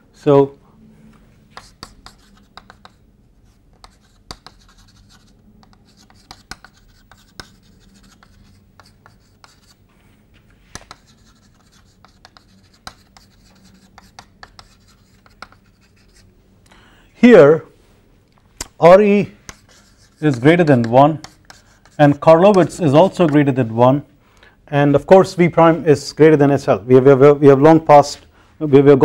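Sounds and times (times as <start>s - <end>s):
chalk tapping on blackboard: 1.5s - 3.0s, 3.8s - 9.8s, 10.7s - 16.2s, 19.4s - 23.5s
chalk scratching on blackboard: 1.5s - 9.8s, 10.7s - 16.3s, 19.2s - 23.4s.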